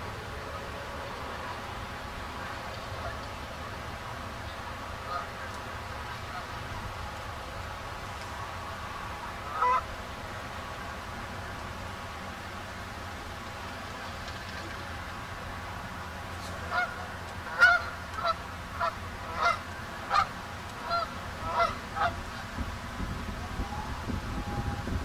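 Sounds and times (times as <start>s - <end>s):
geese honking: 4.5s - 7.2s, 8.6s - 9.9s, 16.4s - 22.4s.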